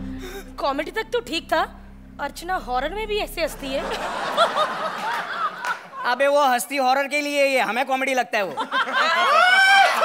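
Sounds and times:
studio audience laughing: 0:03.5 - 0:06.3, 0:08.4 - 0:10.0.

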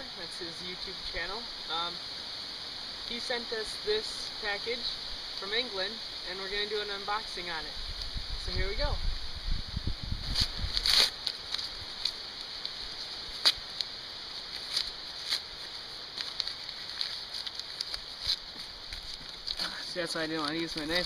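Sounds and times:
steady high hiss: 0:00.0 - 0:21.0
paper envelope tearing: 0:10.4 - 0:11.7, 0:16.2 - 0:19.7.

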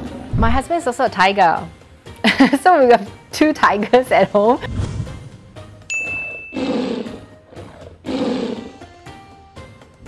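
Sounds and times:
background music: 0:00.0 - 0:10.0
bright ding: 0:05.9 - 0:06.6
tiger roar sound effect: 0:06.2 - 0:08.9.

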